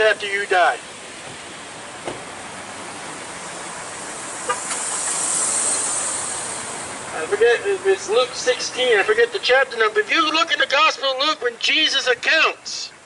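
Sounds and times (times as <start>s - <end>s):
vehicle passing on street: 0.0s - 13.0s.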